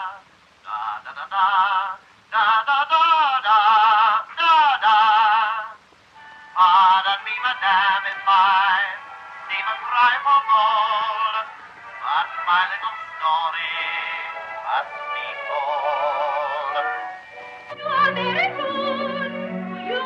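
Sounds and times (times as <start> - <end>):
singer with wide vibrato: 0.0 - 20.0
orchestral accompaniment: 7.4 - 20.0.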